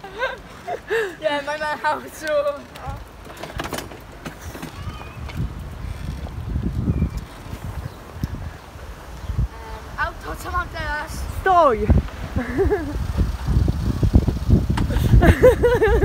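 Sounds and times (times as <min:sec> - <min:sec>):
pedal cart rolling on pavement: 0:00.0 - 0:16.0
wind buffeting microphone: 0:02.2 - 0:16.0
child's voice: 0:04.6 - 0:05.3.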